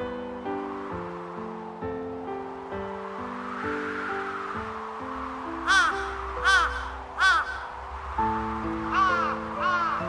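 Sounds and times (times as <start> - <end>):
background music with held notes: 0.0 - 10.0
crow cawing: 5.6 - 7.8, 8.9 - 10.0.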